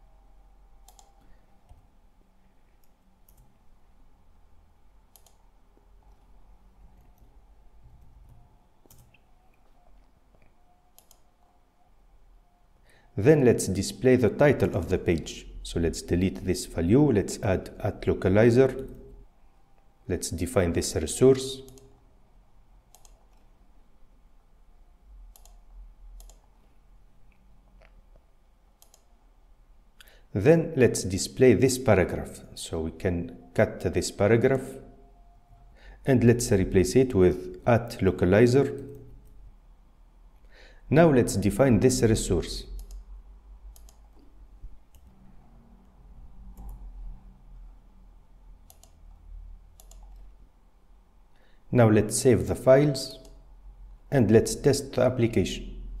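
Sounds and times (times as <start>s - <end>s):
low steady hum: 0.0s - 56.0s
computer mouse clicks: 0.8s - 1.8s, 5.1s - 5.4s, 8.0s - 11.3s, 21.6s - 22.0s, 22.9s - 23.5s, 25.3s - 26.7s, 28.8s - 29.1s, 42.8s - 43.1s, 43.7s - 44.3s, 44.9s - 45.2s, 46.6s - 46.9s, 48.6s - 49.1s, 49.8s - 50.3s
mouse and keyboard clicks: 49.8s - 50.3s.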